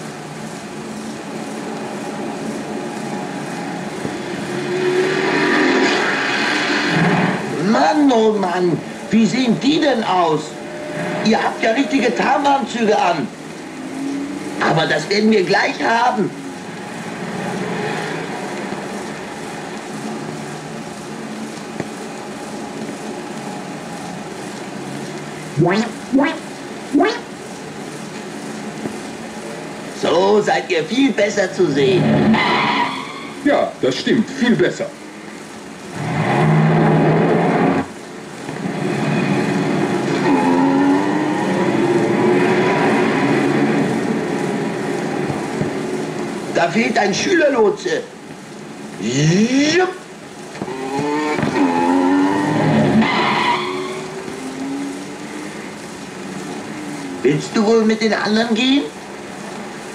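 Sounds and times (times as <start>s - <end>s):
film soundtrack hiss and hum: 0.0s - 59.9s
street traffic rushing: 0.0s - 59.9s.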